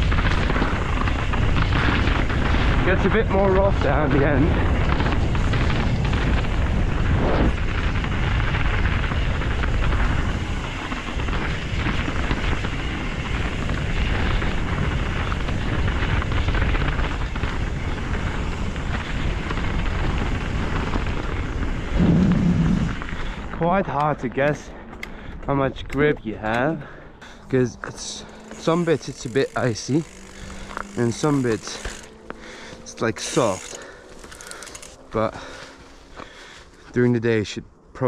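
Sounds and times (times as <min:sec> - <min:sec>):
tyres rolling over dirt: 0:00.0 - 0:36.8
bike knocking and rattling: 0:00.0 - 0:36.9
wind rushing over microphone: 0:00.0 - 0:37.0.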